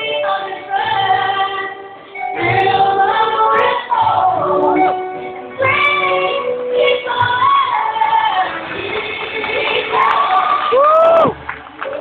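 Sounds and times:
choir singing held notes: 0:00.0 - 0:10.8.

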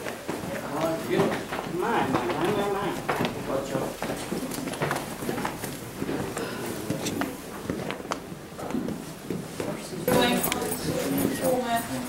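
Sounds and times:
footsteps on rock floor: 0:00.0 - 0:11.5.

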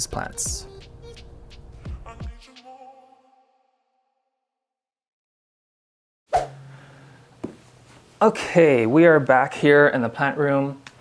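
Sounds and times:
low steady hum: 0:06.4 - 0:09.5.

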